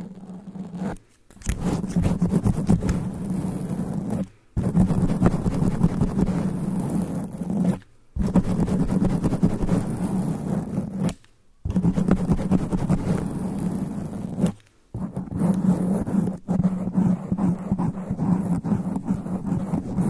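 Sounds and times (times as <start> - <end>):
fingernails scratching microphone foam: 0.0 - 20.0.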